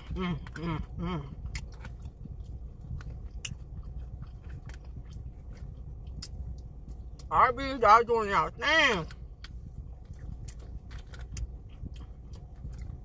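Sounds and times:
person chewing: 0:00.0 - 0:07.3, 0:09.0 - 0:13.0
low hum: 0:00.0 - 0:13.0.

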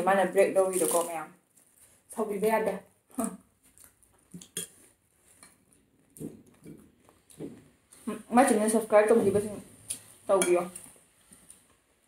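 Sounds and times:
soft chewing: 0:03.5 - 0:08.2.

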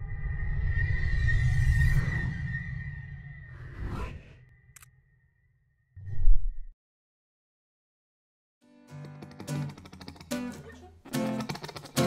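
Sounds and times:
whoosh: 0:00.0 - 0:04.8.

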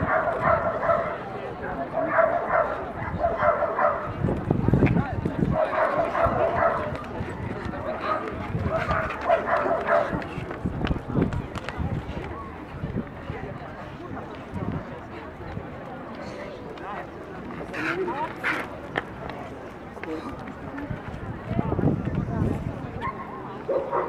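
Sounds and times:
dog barking: 0:00.0 - 0:01.2, 0:02.0 - 0:04.1, 0:05.6 - 0:07.0, 0:08.1 - 0:10.2, 0:23.0 - 0:24.0
crowd murmur: 0:00.0 - 0:24.0.

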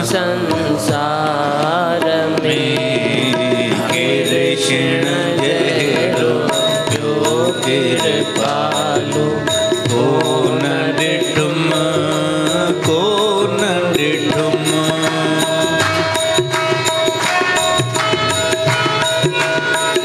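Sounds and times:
instrumental accompaniment: 0:00.0 - 0:20.0
person singing devotional song: 0:00.0 - 0:20.0.

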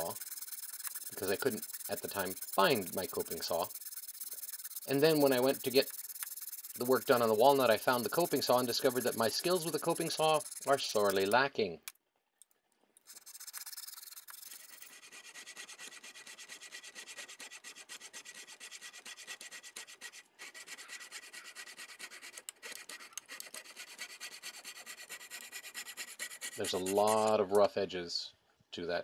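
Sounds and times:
saw rasping through wood: 0:00.0 - 0:11.4, 0:13.1 - 0:27.6.

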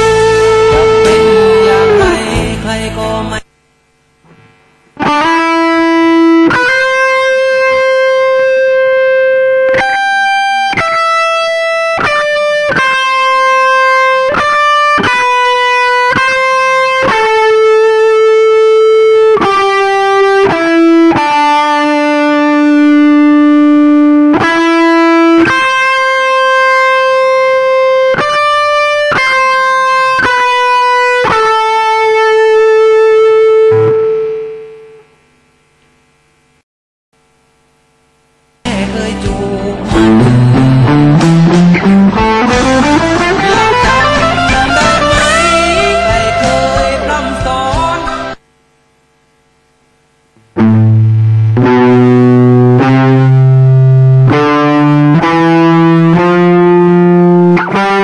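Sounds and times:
electric guitar lead melody: 0:00.0 - 0:03.5, 0:04.3 - 0:35.3, 0:38.7 - 0:48.4, 0:50.2 - 0:58.0.

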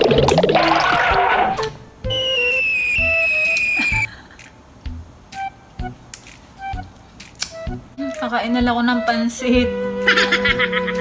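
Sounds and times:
downward sliding whistle: 0:01.4 - 0:04.1
short blips: 0:01.6 - 0:04.1.

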